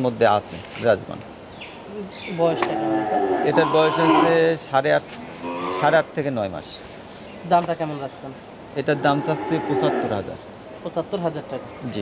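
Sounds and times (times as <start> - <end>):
man talking: 8.8 - 10.4.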